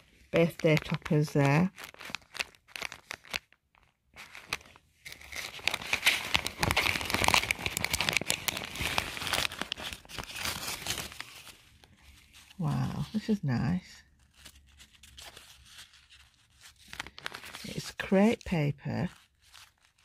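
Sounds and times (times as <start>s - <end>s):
plastic sleeve crinkling: 0.0s - 20.0s.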